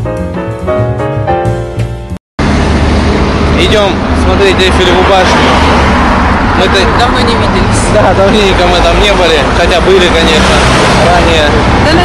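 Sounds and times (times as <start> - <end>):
piano tune: 0.0 - 2.6
city road traffic noise: 0.0 - 12.0.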